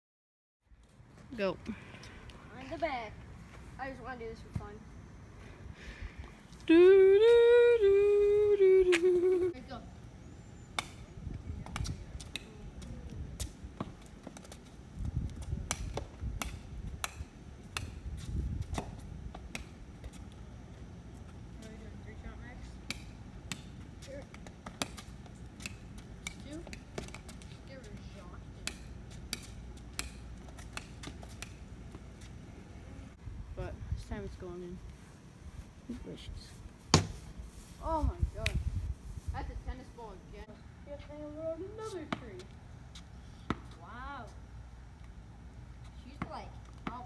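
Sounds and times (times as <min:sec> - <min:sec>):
ball bouncing on concrete: 0:10.8 - 0:20.4, 0:21.6 - 0:32.0, 0:36.9 - 0:37.2, 0:41.8 - 0:42.6, 0:43.5 - 0:43.8, 0:46.1 - 0:47.0.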